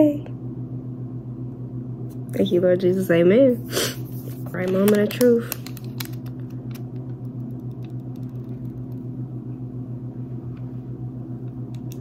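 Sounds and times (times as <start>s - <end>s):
appliance humming: 0.0s - 12.0s
paper crinkling: 4.1s - 6.8s.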